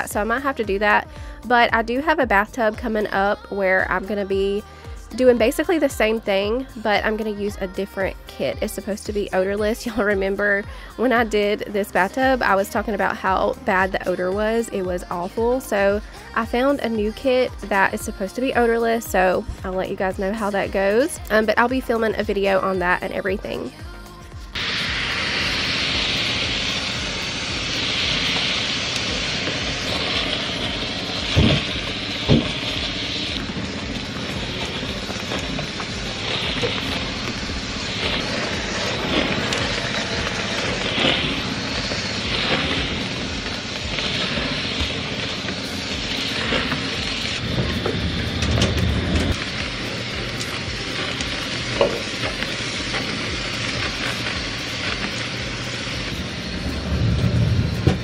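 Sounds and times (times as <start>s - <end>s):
steam mop hissing: 0.0s - 58.0s
low rumble: 24.4s - 58.0s.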